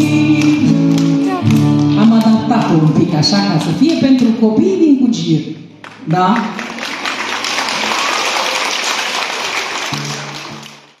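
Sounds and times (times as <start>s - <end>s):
audience clapping: 0.0s - 4.6s, 5.8s - 11.0s.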